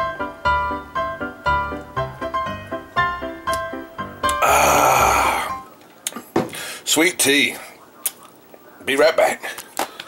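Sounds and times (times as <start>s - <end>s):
man exhaling loudly: 4.4s - 5.6s.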